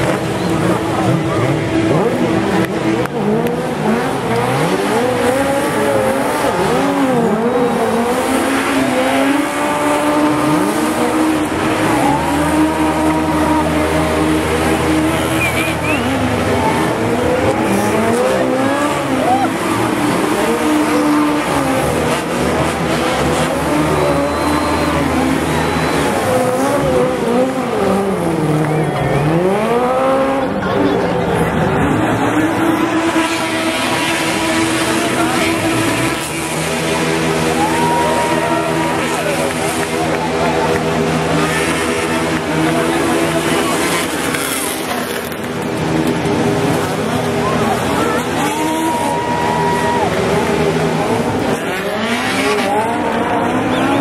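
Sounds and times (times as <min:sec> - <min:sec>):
race car engines revving: 0:00.0 - 0:54.0
tyres squealing on tarmac: 0:10.4 - 0:21.7, 0:22.8 - 0:27.5.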